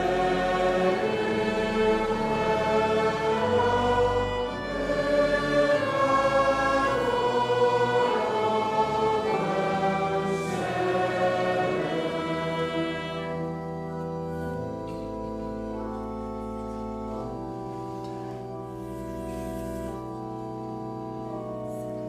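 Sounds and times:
slow church music chords: 0.0 - 22.0.

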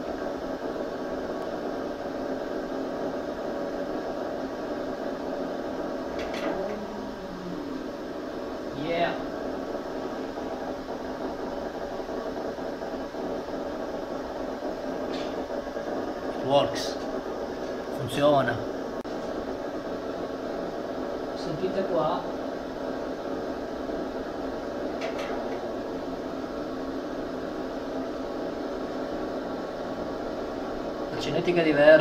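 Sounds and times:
steady crackling neuron firing: 0.0 - 32.0.

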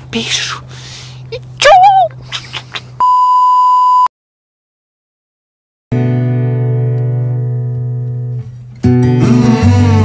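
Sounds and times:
woman squealing: 1.6 - 2.6.

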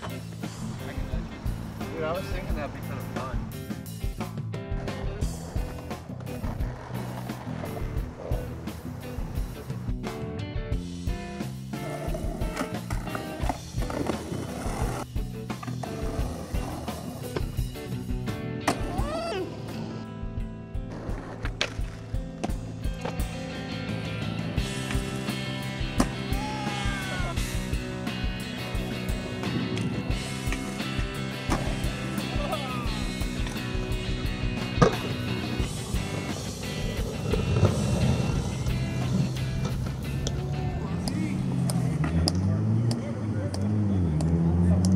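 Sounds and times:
skateboard wheels rolling: 0.0 - 10.1, 11.7 - 20.1, 20.8 - 42.5
background music: 0.0 - 44.9
skateboard pops and landings: 34.7 - 35.2.

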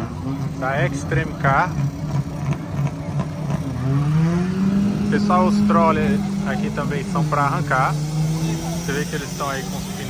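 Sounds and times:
car engine idling lumpily: 0.0 - 10.0
engine revving up: 0.0 - 10.0.

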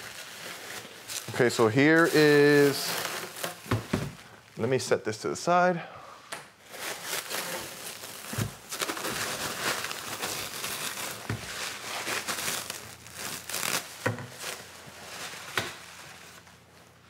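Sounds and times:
plastic wrap crinkling: 0.0 - 4.8, 6.6 - 17.0.

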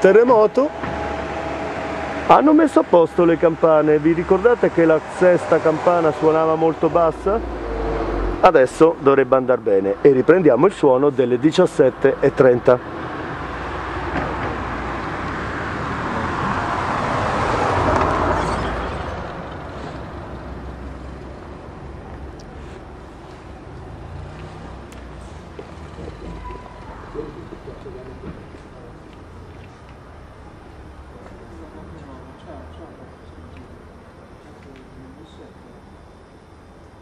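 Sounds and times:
vehicle passing: 0.0 - 33.1
background street noise: 0.0 - 37.0.

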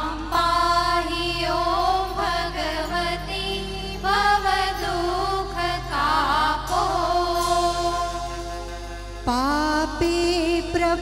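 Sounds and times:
woman singing with vibrato: 0.0 - 8.6, 9.2 - 11.0
sustained held note: 6.6 - 10.4.

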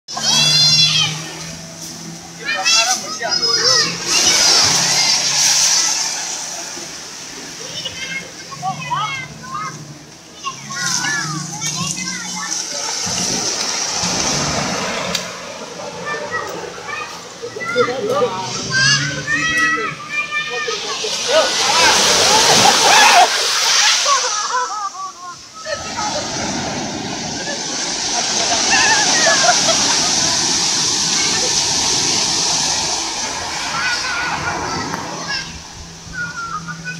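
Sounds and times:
sea waves breaking: 0.1 - 36.9
voices calling out: 0.1 - 36.9
water splashing and surf: 0.1 - 36.9
people shouting and whooping: 17.8 - 36.9.

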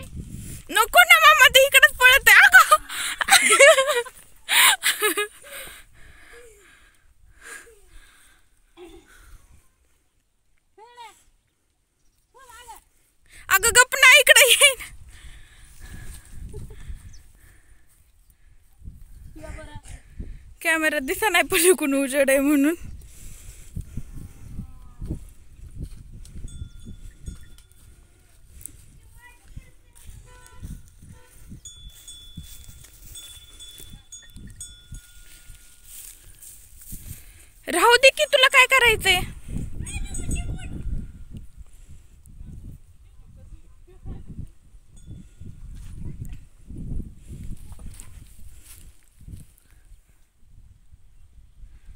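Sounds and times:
wind rumble on microphone: 0.0 - 0.8, 14.9 - 18.0, 18.6 - 20.7, 22.8 - 37.6, 38.9 - 51.9.

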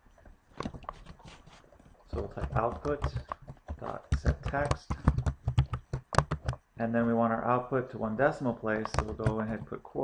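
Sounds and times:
computer keyboard typing: 2.1 - 6.6, 8.8 - 9.8.

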